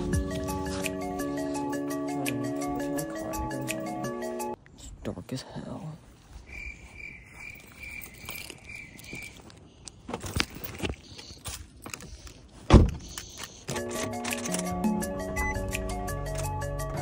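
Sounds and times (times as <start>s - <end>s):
music with pitched notes: 0.0s - 4.6s, 13.8s - 17.0s
car door shutting: 12.7s - 13.0s
car warning chime beeping: 15.3s - 15.7s.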